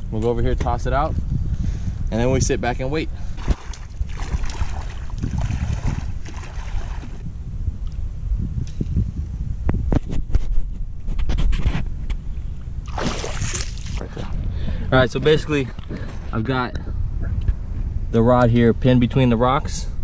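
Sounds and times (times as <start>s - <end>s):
wind rumbling on microphone: 0.0s - 20.0s
water sloshing around wading legs: 3.3s - 7.2s, 12.9s - 16.2s.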